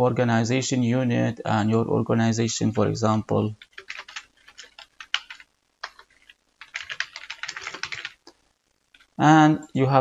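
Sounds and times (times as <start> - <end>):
computer keyboard typing: 3.6 - 9.2.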